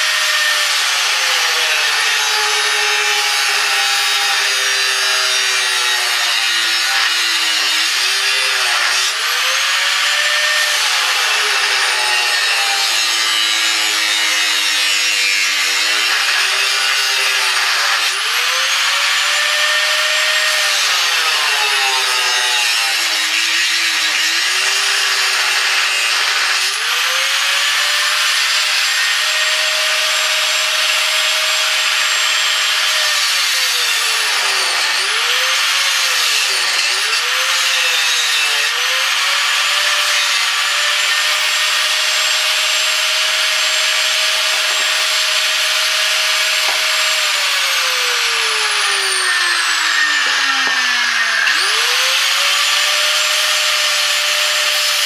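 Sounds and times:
angle grinder cutting metal: 0.0s - 55.0s.

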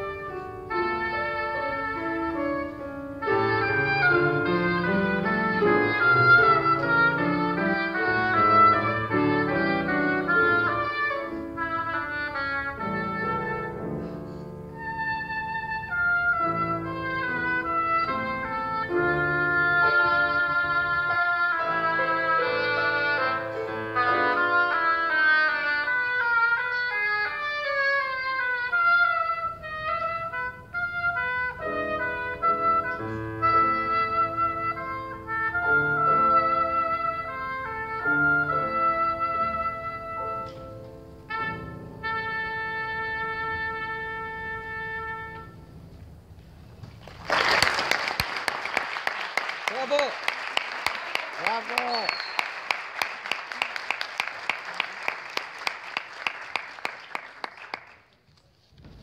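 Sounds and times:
oboe solo melody: 0.0s - 46.0s
piano accompaniment: 0.0s - 46.6s.

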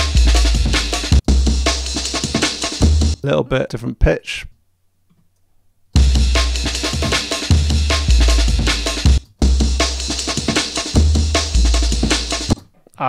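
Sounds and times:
deep sub-bass notes: 0.0s - 2.0s, 6.0s - 6.9s, 7.5s - 10.2s
chopped breakbeat drum loop: 0.0s - 3.2s, 6.0s - 12.6s.

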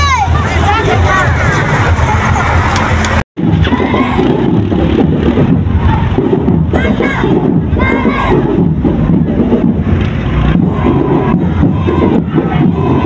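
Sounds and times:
crowd shouting and cheering: 0.0s - 13.0s
high-pitched shouts: 6.7s - 8.6s.

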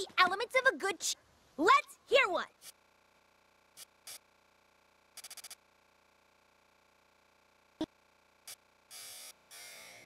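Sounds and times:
static-like hiss bursts: 2.6s - 4.4s, 5.1s - 5.7s.

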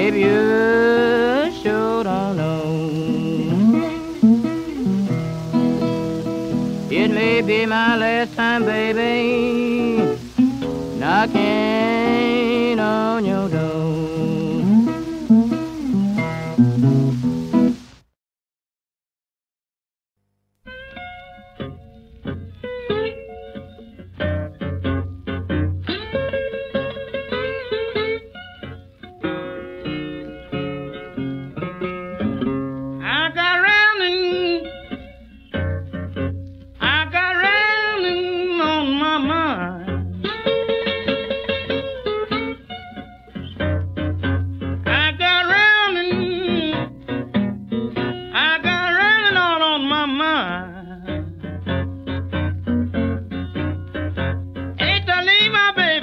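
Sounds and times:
man singing: 0.0s - 4.6s, 6.5s - 15.4s, 33.0s - 34.8s, 36.8s - 40.6s, 44.8s - 47.0s, 48.3s - 51.4s, 54.8s - 56.0s
acoustic guitar: 0.0s - 18.0s, 20.6s - 56.0s.

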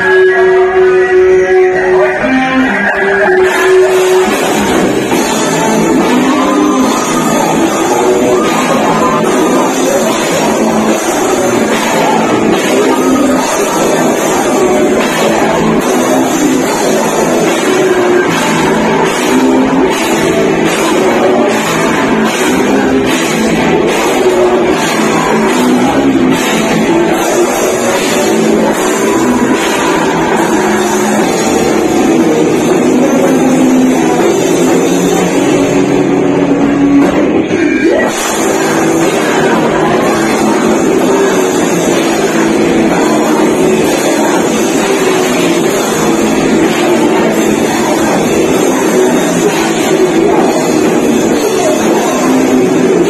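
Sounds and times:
heavy metal band playing: 0.0s - 53.0s.

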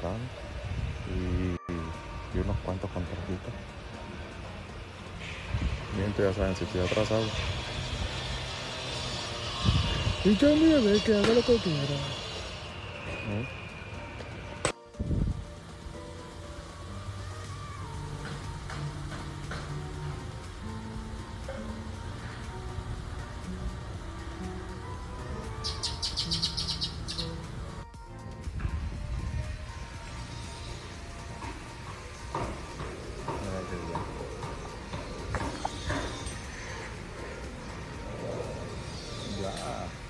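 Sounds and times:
soft background music: 0.0s - 40.0s
fast high bird trill: 25.4s - 27.6s.

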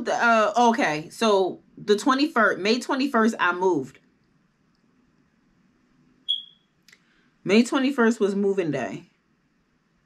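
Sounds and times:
short high electronic beep: 6.3s - 6.6s.

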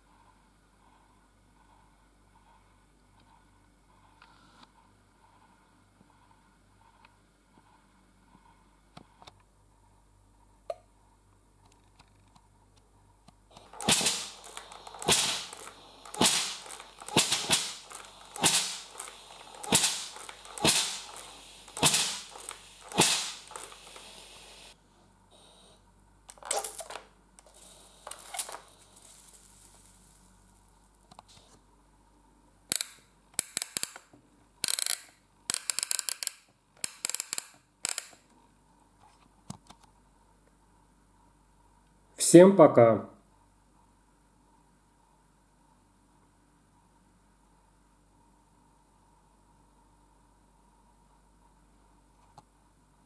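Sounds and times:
steam iron hissing puffs: 13.6s - 25.8s, 26.6s - 31.6s.

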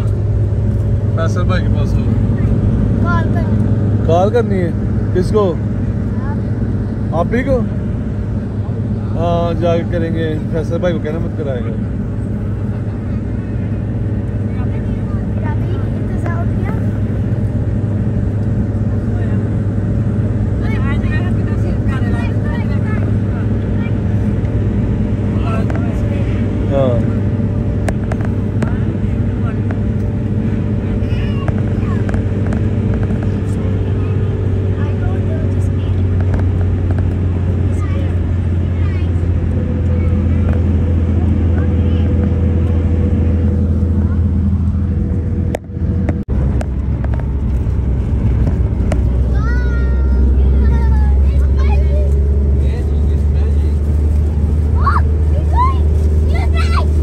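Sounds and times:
car engine drone: 0.0s - 57.0s
faint passenger voices: 0.0s - 57.0s
road noise: 0.0s - 57.0s.

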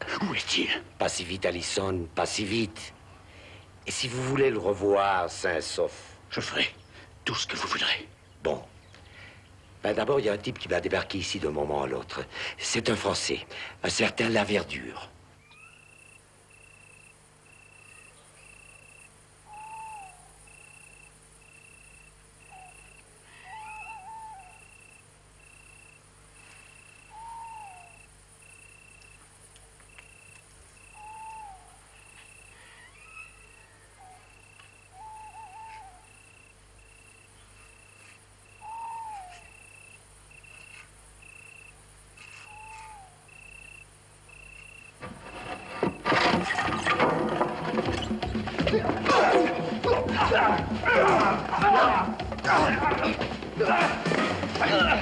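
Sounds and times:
cricket chirping: 0.0s - 55.0s
owl falling call: 19.4s - 21.0s, 22.4s - 25.0s, 25.6s - 28.8s, 30.0s - 36.5s, 38.0s - 40.9s, 42.2s - 43.8s.

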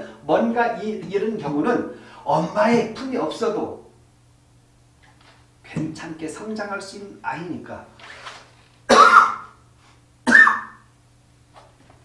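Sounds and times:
man coughing: 8.9s - 9.6s, 10.2s - 10.8s.

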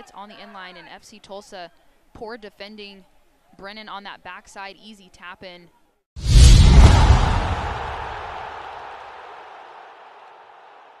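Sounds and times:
deep boom with noisy swell: 6.2s - 8.6s.

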